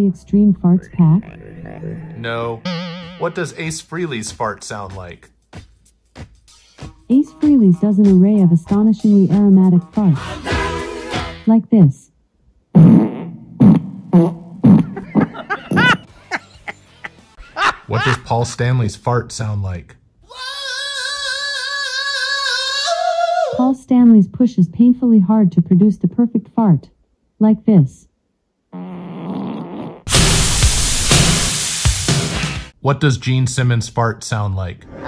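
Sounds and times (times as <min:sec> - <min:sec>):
fart sound effects from speaker: 0:12.7 - 0:15.0, 0:28.7 - 0:30.6
distorted rock music: 0:30.1 - 0:32.7.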